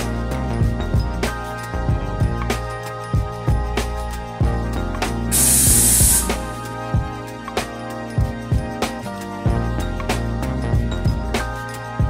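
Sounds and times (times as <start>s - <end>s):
background music: 0.0s - 12.0s
espresso machine steam hiss: 5.3s - 6.6s.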